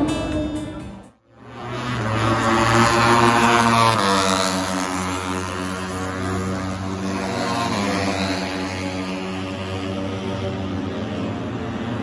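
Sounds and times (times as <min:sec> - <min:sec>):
motorcycle engines at high revs: 0:01.3 - 0:12.0.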